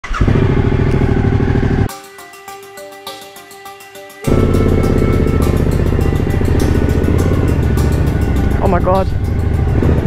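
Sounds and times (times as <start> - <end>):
motorcycle engine running: 0.0 - 1.9, 4.3 - 10.0.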